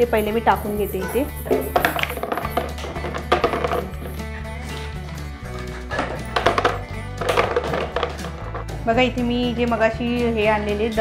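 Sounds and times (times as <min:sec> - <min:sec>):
background music: 0:00.0 - 0:11.0
stones clattering into plastic pot: 0:01.5 - 0:04.3, 0:06.0 - 0:08.8.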